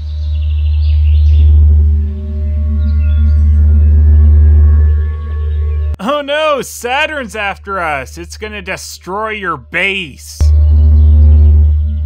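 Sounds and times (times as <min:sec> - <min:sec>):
deep electronic alarm hum: 0:00.0 - 0:06.0, 0:10.4 - 0:12.0
high warbling chirps: 0:00.0 - 0:06.0, 0:10.4 - 0:12.0.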